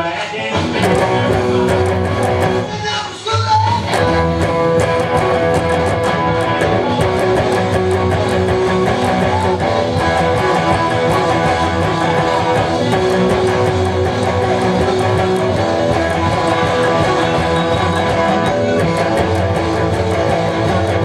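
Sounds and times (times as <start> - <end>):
electric guitar rock riff: 0.0 - 21.0.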